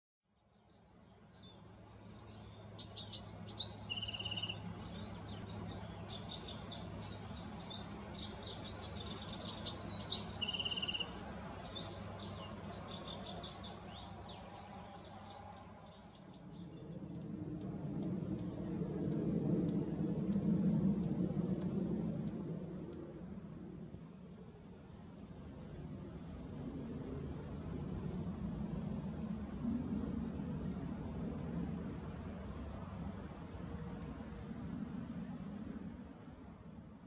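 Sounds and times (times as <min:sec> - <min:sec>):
wren singing with buzzy trill: 0:00.5 - 0:17.3.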